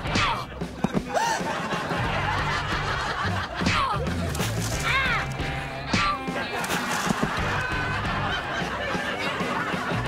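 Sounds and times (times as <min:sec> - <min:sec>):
light background music: 0:00.0 - 0:10.0
people snickering and chuckling: 0:00.0 - 0:10.0.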